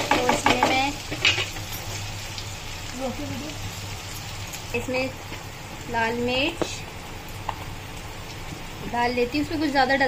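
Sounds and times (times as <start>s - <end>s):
vegetables sizzling in hot oil: 0.0s - 10.0s.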